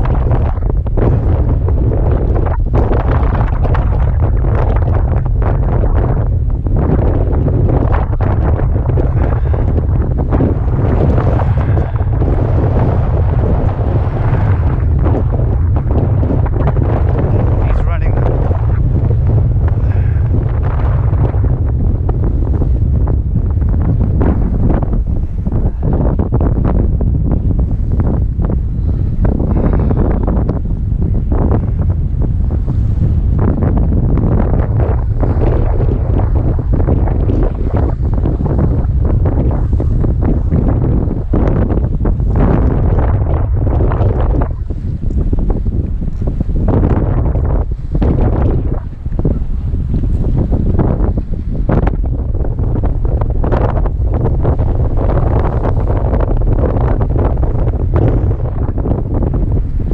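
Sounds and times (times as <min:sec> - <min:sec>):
waves washing against rocks: 0:00.0 - 0:59.9
wind buffeting microphone: 0:00.0 - 0:59.9.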